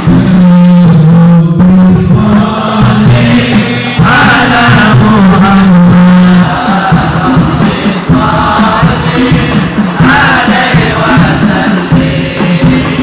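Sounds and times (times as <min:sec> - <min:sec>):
man singing into microphone: 0:00.0 - 0:13.0
group chanting in rhythm: 0:01.9 - 0:13.0.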